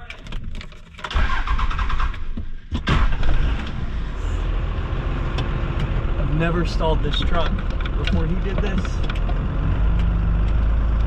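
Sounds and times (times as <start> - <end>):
diesel engine cranking and running: 0.0 - 11.0.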